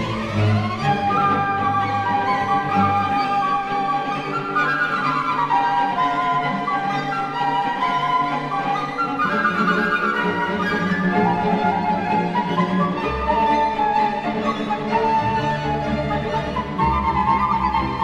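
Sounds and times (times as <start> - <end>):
flutes: 0.0 - 18.0
string orchestra: 0.0 - 18.0.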